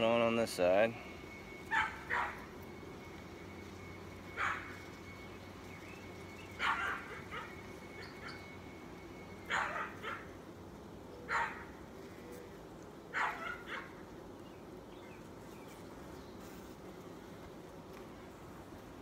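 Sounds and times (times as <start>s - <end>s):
honeybees humming: 0.0s - 19.0s.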